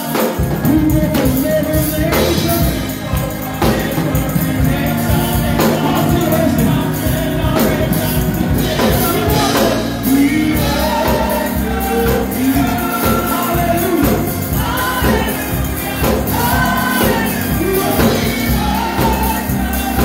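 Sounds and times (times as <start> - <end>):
group singing gospel: 0.0 - 20.0
instrumental accompaniment: 0.0 - 20.0.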